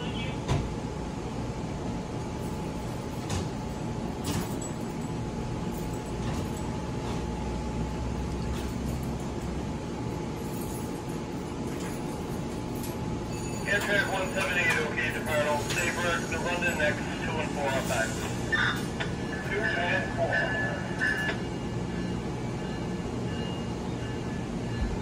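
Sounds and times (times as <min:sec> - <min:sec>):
train rumble and hum: 0:00.0 - 0:25.0.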